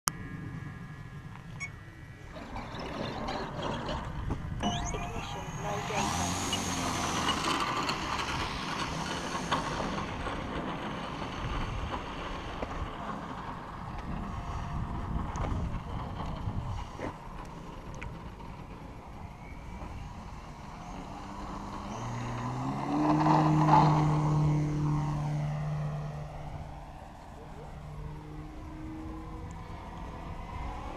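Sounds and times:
model plane engine and propeller: 0.1 - 30.9.

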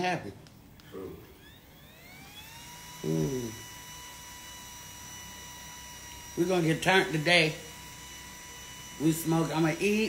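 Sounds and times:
small electric motor whine: 0.9 - 10.0.

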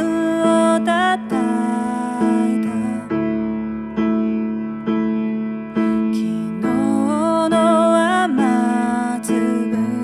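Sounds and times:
woman singing: 0.0 - 3.6, 5.8 - 10.0
piano accompaniment: 0.0 - 10.0.

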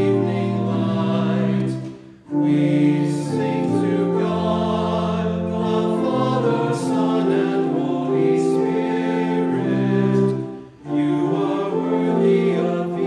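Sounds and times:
choir singing a hymn: 0.0 - 13.0.

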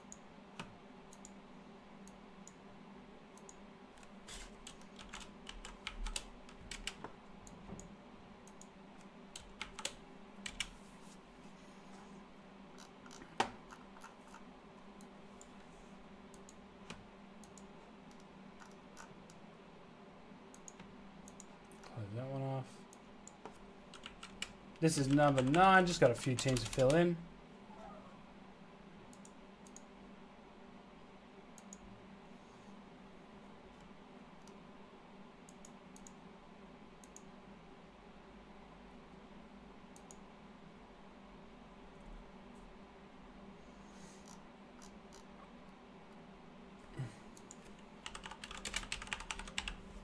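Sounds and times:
faint steady hum: 0.0 - 50.0
computer keyboard typing: 4.6 - 7.0, 9.3 - 10.8, 23.3 - 27.0, 47.4 - 49.8.

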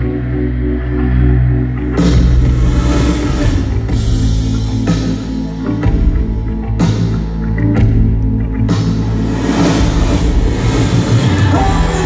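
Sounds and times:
loud live rock band: 0.0 - 12.0
low bass line: 0.0 - 12.0.

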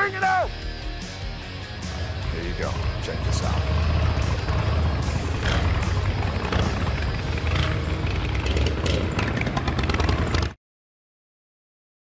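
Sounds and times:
motorcycle engine rumbling: 1.0 - 10.6.

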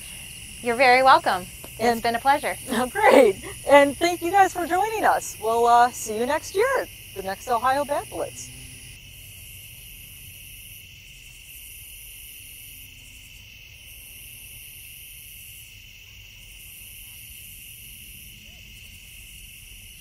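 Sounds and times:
insect high trill: 0.0 - 20.0
pulsing insect call: 0.0 - 20.0.

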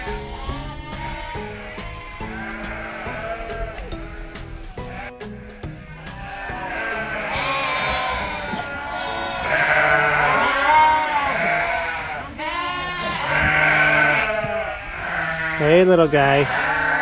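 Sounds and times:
soft background music: 0.0 - 12.0
sheep bleating: 0.0 - 17.0.

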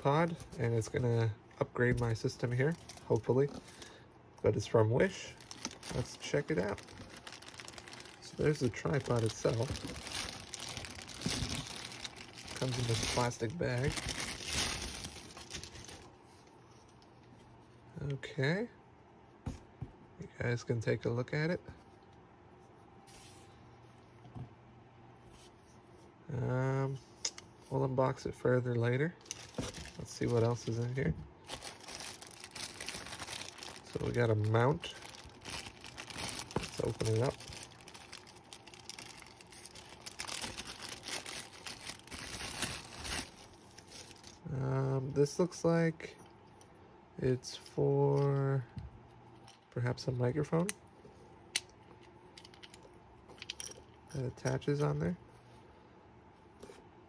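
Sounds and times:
faint room hum and hiss: 0.0 - 57.0.

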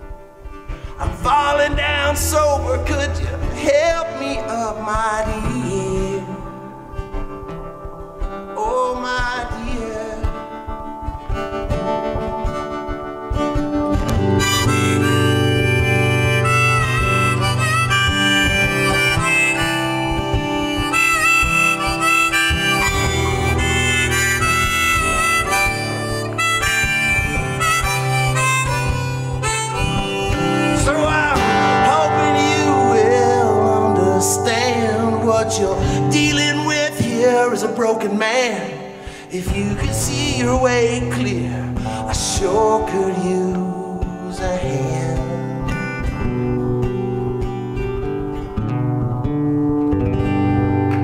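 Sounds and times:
acoustic guitar strumming: 0.0 - 51.0
bending lead melody: 0.0 - 51.0.

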